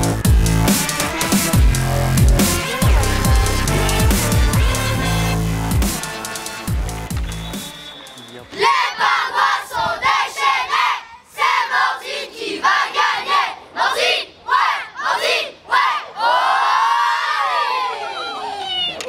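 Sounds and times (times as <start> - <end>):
children chanting a cheer: 8.4 - 18.2
children shouting a long cheer: 13.9 - 19.0.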